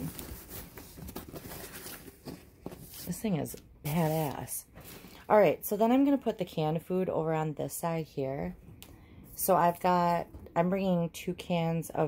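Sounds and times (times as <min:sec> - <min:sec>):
rustling and clicking handling noise: 0:00.0 - 0:05.2.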